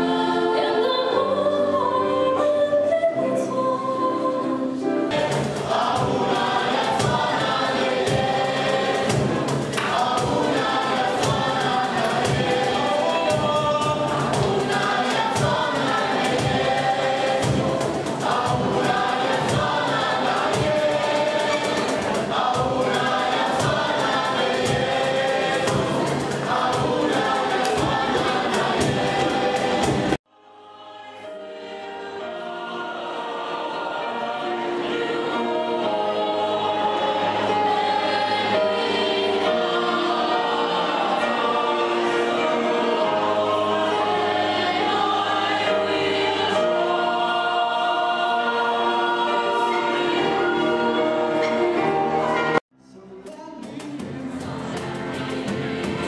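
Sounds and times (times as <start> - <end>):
choir singing: 0.0 - 52.6, 53.6 - 56.0
steady percussive beat: 5.1 - 30.2, 53.2 - 56.0.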